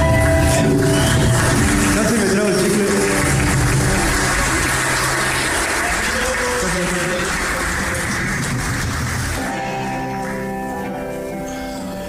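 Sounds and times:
band playing distorted music: 0:00.0 - 0:12.0.

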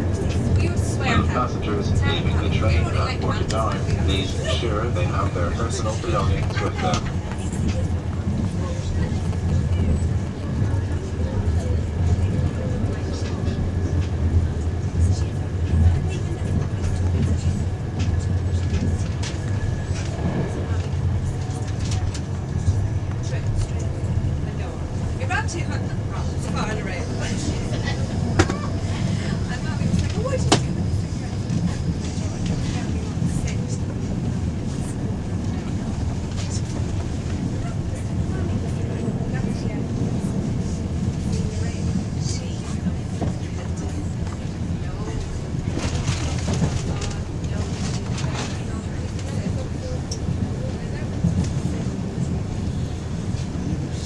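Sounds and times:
faint indistinct voices: 0:00.0 - 0:54.0.

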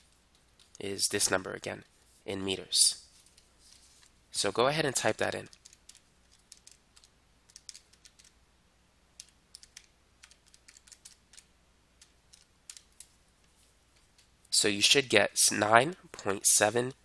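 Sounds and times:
calculator keys clicking: 0:05.5 - 0:08.4, 0:09.2 - 0:13.1.

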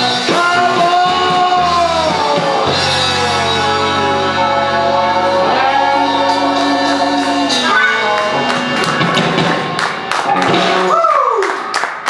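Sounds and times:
live rock band with singing: 0:00.0 - 0:11.3
hand clapping: 0:08.1 - 0:12.0.

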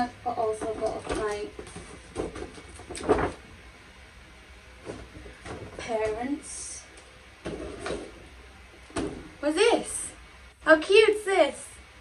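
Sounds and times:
plastic box rustling: 0:00.6 - 0:03.5, 0:04.8 - 0:06.0.

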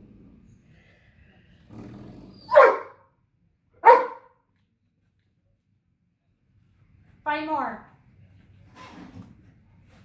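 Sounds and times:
dog growling: 0:00.0 - 0:00.6, 0:01.6 - 0:02.5
dog barking: 0:02.5 - 0:03.1, 0:03.8 - 0:04.4.

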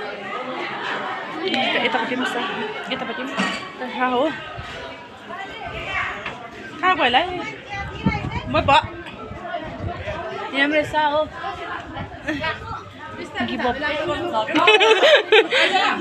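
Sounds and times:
people talking and chattering: 0:00.0 - 0:16.0.

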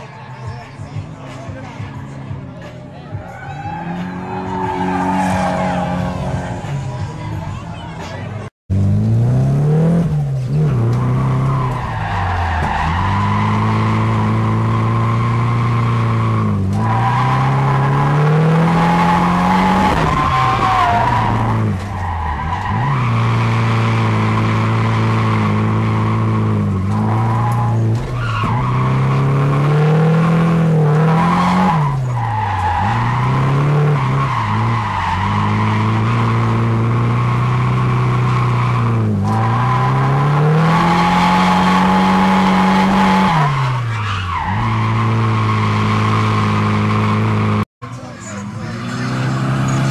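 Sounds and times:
car engine revving: 0:00.0 - 0:49.9.

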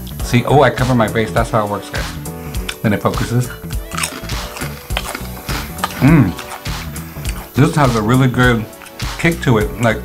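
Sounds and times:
background music: 0:00.0 - 0:10.0
chewing crunchy chips: 0:02.4 - 0:09.2.

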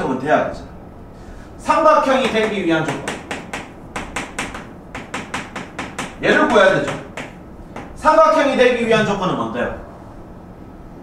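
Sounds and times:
chalk tapping on chalkboard: 0:02.1 - 0:08.0.

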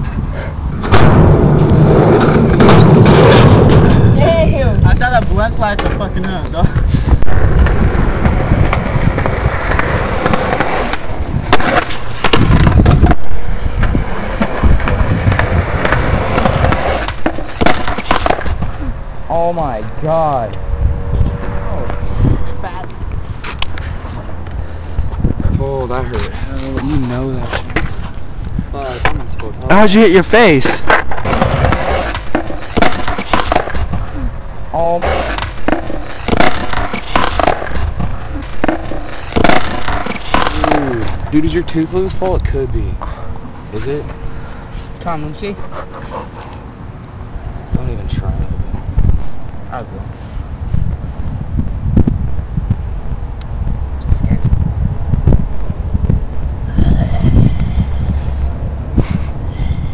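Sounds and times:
skateboard wheels rolling: 0:00.7 - 0:19.2, 0:25.9 - 0:44.3
skateboard clacking on ground: 0:07.6 - 0:18.8, 0:30.6 - 0:34.0, 0:35.0 - 0:41.4.

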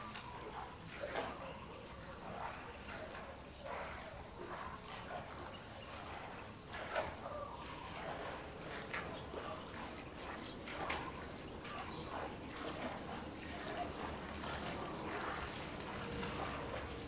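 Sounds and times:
swimmer splashing: 0:00.0 - 0:17.0
water lapping at pool edge: 0:00.0 - 0:17.0.

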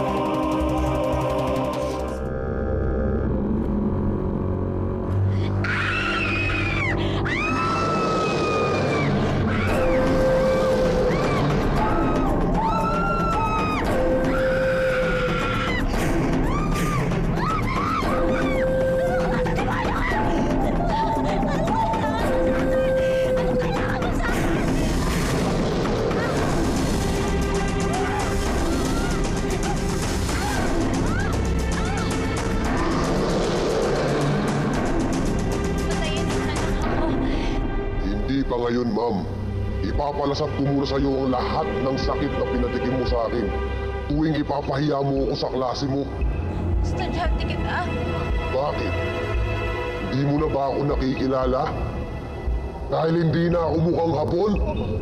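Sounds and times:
dramatic background music: 0:00.0 - 0:55.0.

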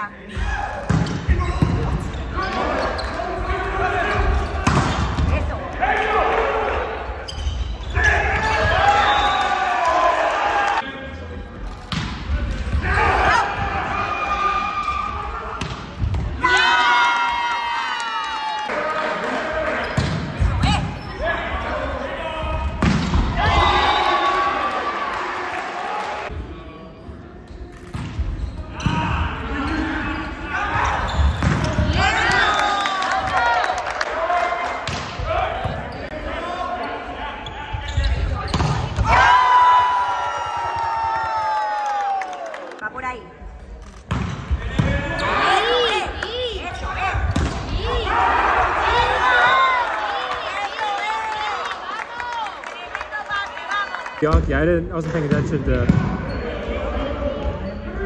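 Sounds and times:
players shouting: 0:00.3 - 0:10.8, 0:12.5 - 0:26.3, 0:28.7 - 0:42.6, 0:44.6 - 0:54.1
sneakers squeaking on hardwood: 0:00.9 - 0:03.5, 0:07.2 - 0:08.1, 0:30.6 - 0:31.8, 0:37.4 - 0:39.0.

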